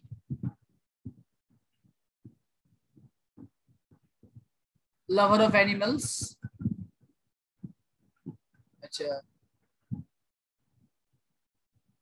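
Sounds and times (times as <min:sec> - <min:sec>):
soft low thumps: 0:00.0 - 0:08.5, 0:09.8 - 0:10.2.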